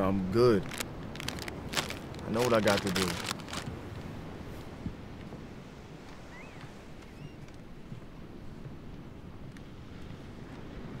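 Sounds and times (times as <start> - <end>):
ocean surf: 0.0 - 11.0
wind: 0.0 - 11.0.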